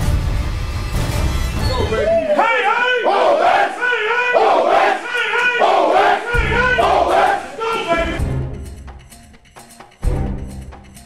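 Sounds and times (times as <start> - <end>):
group of voices chanting: 2.0 - 8.2.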